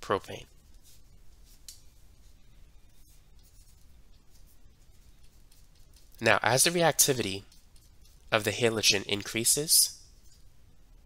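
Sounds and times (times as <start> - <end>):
low room hiss: 0.0 - 11.0
stylus scratching on pen tablet: 2.2 - 9.0.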